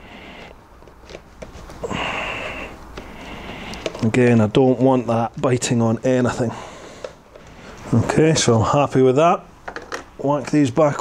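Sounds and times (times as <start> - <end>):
cables rustling: 0.0 - 8.5.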